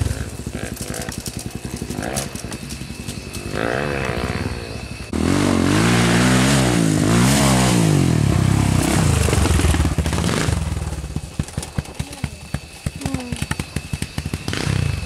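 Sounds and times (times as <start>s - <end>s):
dirt bike engines revving: 0.0s - 15.0s.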